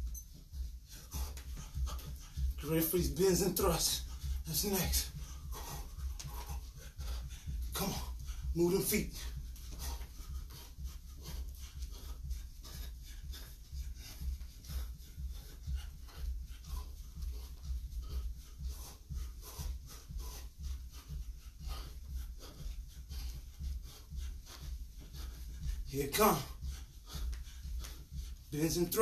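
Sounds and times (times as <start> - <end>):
low steady hum: 0.0 - 28.6
person breathing hard: 0.0 - 29.0
quick footfalls on carpet: 0.0 - 29.0.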